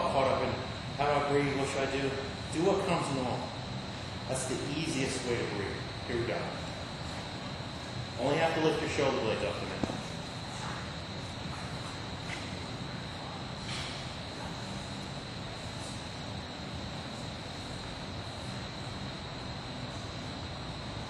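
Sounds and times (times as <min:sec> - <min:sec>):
faint high whine: 0:00.0 - 0:21.0
room hum and hiss: 0:00.0 - 0:21.0.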